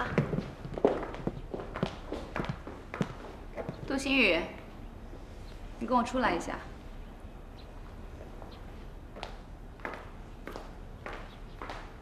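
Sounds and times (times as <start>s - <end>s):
footsteps: 0.0s - 4.2s.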